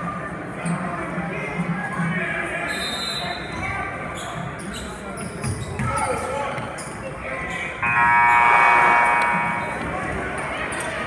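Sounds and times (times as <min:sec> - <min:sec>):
crowd chatter: 0:00.0 - 0:11.0
scoreboard buzzer: 0:07.8 - 0:09.8.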